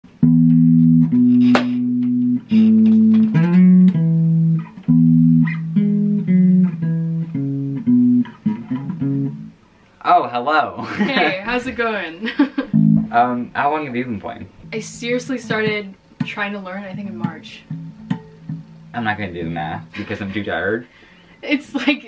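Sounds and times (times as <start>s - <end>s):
fingerstyle electric bass guitar: 0.0s - 9.6s, 12.7s - 20.3s.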